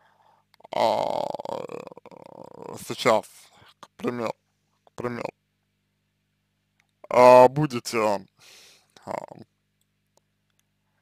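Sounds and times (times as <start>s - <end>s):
low steady hum: 0.0s - 11.0s
man speaking: 0.6s - 4.4s, 5.0s - 5.4s, 7.0s - 8.3s, 9.0s - 9.4s.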